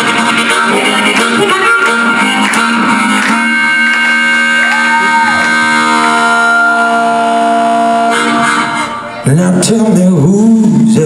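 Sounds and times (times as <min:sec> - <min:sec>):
harmonica through microphone: 0:00.0 - 0:11.0.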